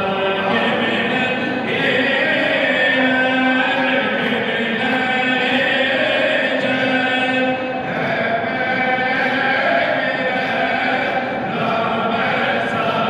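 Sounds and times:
voices chanting a hymn: 0.0s - 13.0s.

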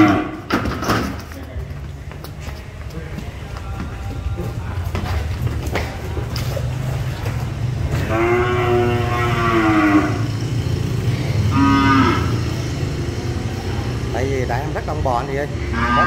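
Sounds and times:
cattle mooing: 0.0s - 0.5s, 7.8s - 10.6s, 11.4s - 12.6s, 15.6s - 16.0s.

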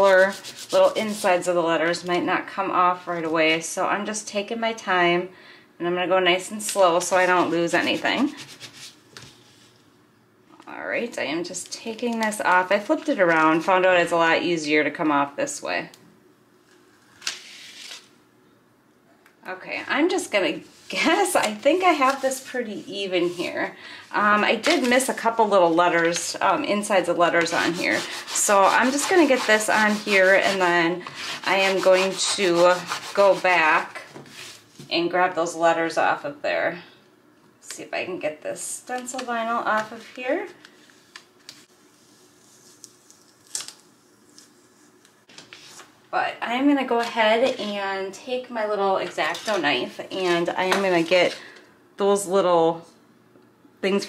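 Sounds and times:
vinyl film peeling rustle: 16.7s - 18.1s, 20.6s - 23.4s, 24.5s - 26.4s, 39.0s - 46.0s
vinyl peeling scratches and crinkles: 17.2s - 18.1s, 41.0s - 45.9s.

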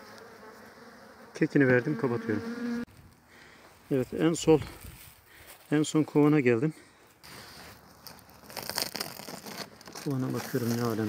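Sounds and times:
plastic sack crinkling: 7.7s - 11.0s.

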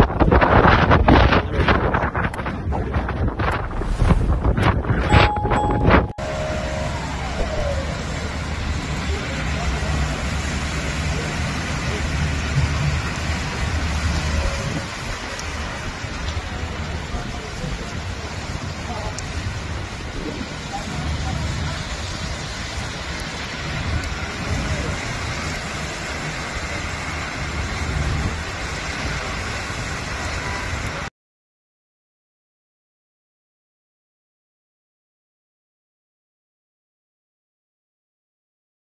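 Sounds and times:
deep rumble: 0.0s - 17.5s
car tyres on wet road: 0.0s - 31.1s
people's voices: 5.1s - 27.0s.

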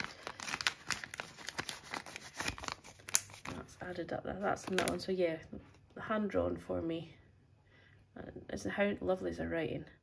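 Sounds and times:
plastic pouch crinkling: 0.0s - 5.2s.

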